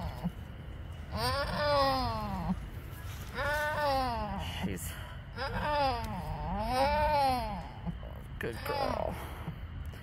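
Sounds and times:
goat crying: 0:01.1 - 0:02.6, 0:05.4 - 0:09.2.

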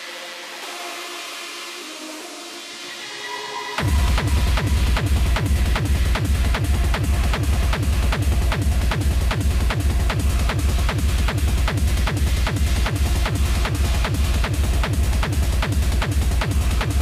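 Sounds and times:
electronic dance music: 0:00.0 - 0:17.0
fast kick drum: 0:03.8 - 0:17.0.

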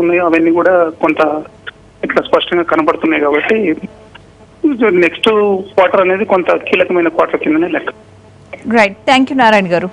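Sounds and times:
man talking over telephone: 0:00.0 - 0:04.0, 0:04.6 - 0:08.0.

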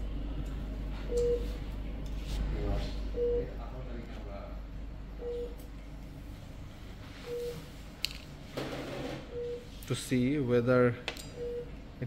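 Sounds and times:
patient monitor beeping: 0:01.0 - 0:01.6, 0:03.1 - 0:03.8, 0:05.2 - 0:05.7, 0:07.1 - 0:07.7, 0:09.0 - 0:09.8, 0:11.3 - 0:11.8.

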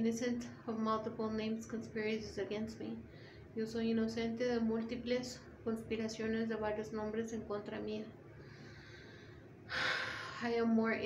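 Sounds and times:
woman breathing in: 0:08.4 - 0:10.4.

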